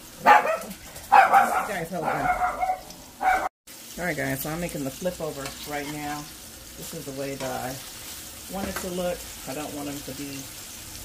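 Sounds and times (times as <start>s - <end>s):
small dog barking sharply: 0.2s - 3.5s
dog whining high-pitched: 0.3s - 3.5s.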